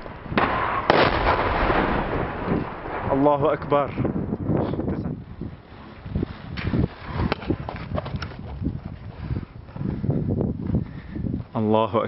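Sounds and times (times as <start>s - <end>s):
explosion blasts: 0.0s - 4.6s.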